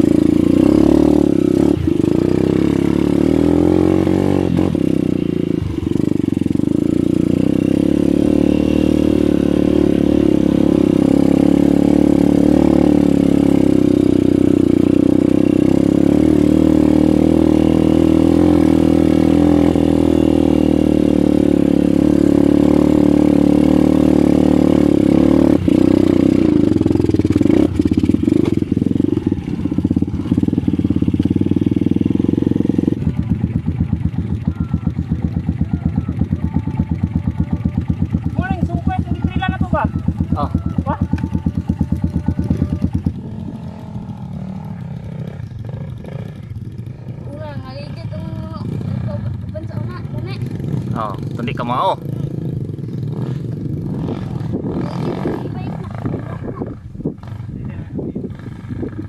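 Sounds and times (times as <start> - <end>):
dirt bike engine running: 0.0 - 59.0.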